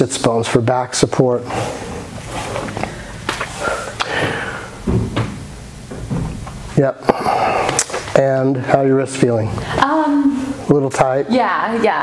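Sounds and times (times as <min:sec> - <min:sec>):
exercise machine knocks and thuds: 0:04.8 - 0:06.5.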